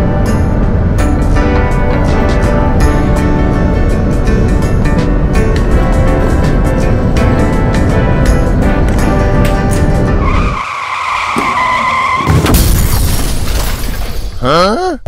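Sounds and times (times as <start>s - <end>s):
background music with steady beat: 0.0s - 10.3s
tyre screech sound effect: 10.2s - 12.5s.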